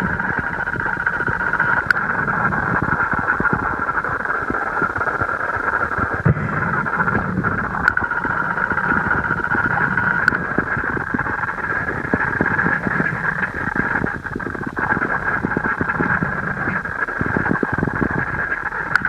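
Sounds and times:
creek water rushing underwater: 0.0 - 19.0
faint clicks: 0.2 - 19.0.

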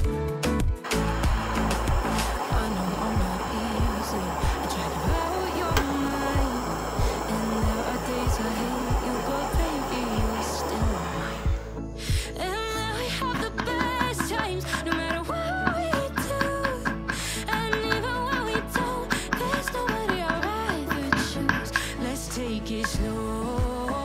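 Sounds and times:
background music with steady beat: 0.0 - 24.0
soldering torch hissing: 0.8 - 11.9.

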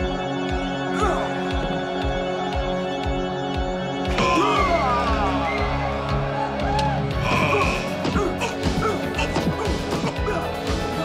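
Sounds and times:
dramatic movie score: 0.0 - 11.0.

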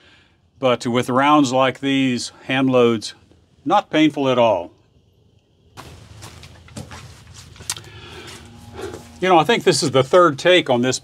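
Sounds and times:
low rumble: 5.2 - 10.2
rustling: 5.8 - 10.3.

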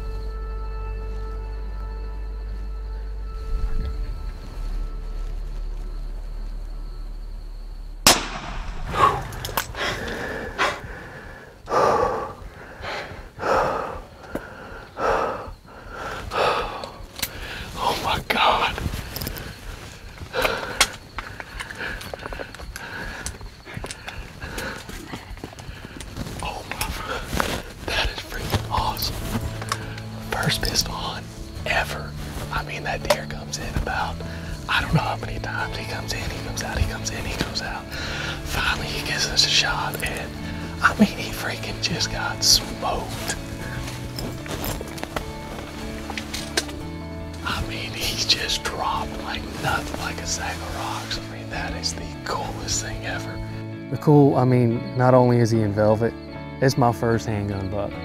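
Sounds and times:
revolver gunshot: 8.0 - 9.4
breathing: 9.0 - 17.8, 20.3 - 26.2, 37.9 - 38.4.

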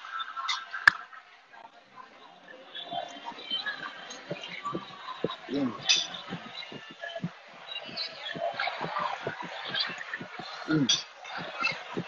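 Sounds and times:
restaurant chatter: 0.6 - 12.0.

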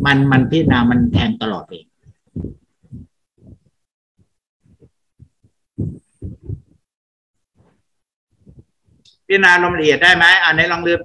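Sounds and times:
soft low muffled thumps: 0.0 - 6.9, 7.6 - 10.9.

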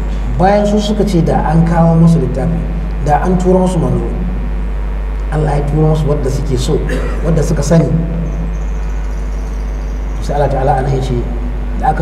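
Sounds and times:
high thin whine: 0.0 - 12.0
low electrical hum: 0.0 - 12.0.

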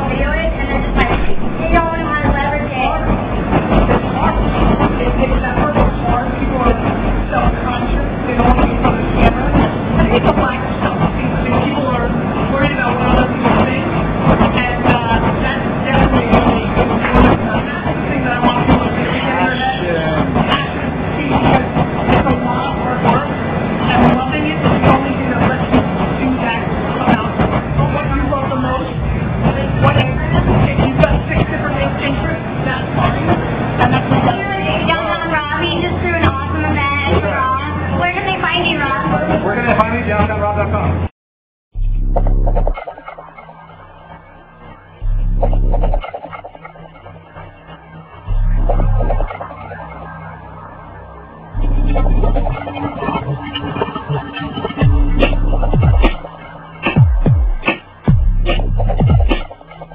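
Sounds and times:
background chatter: 0.0 - 41.1
room din with low rumble: 0.0 - 41.1, 41.8 - 59.9.

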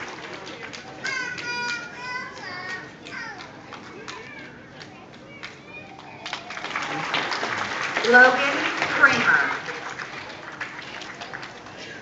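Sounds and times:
young children chattering: 0.5 - 6.6.

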